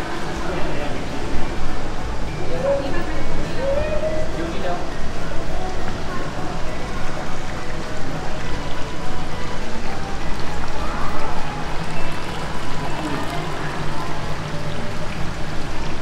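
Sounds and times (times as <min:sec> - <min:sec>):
faint voices: 0:00.0 - 0:16.0
water running and splashing: 0:00.0 - 0:16.0.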